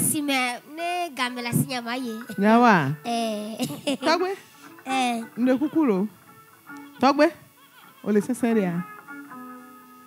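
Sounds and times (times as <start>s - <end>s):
woman's quavering cries: 5.4s - 6.1s.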